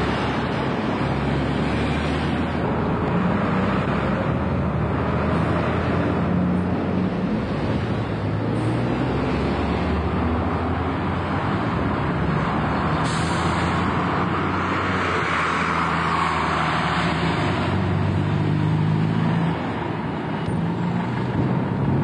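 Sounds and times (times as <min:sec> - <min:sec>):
diesel bus engine humming: 0:00.0 - 0:22.0.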